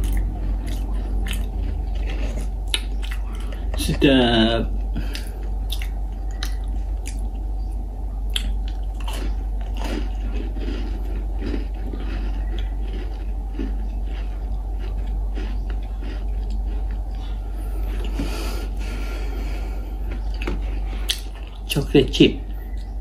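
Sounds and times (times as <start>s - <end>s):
cookie crunching while chewed: 0.0s - 23.0s
steady low hum: 0.0s - 23.0s.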